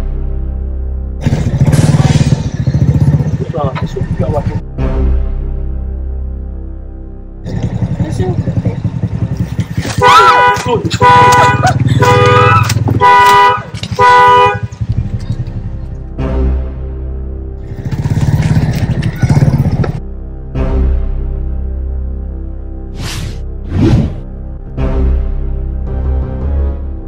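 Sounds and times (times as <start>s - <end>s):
motorcycle engine running: 1.2s - 4.6s, 7.4s - 16.4s, 17.6s - 20.1s
car horn blasts: 9.7s - 15.1s.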